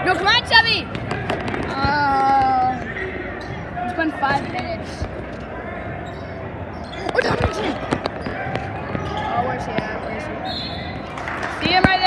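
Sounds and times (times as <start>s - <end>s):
crowd chatter echoing: 0.0s - 12.0s
basketball bouncing on hardwood: 7.0s - 10.0s.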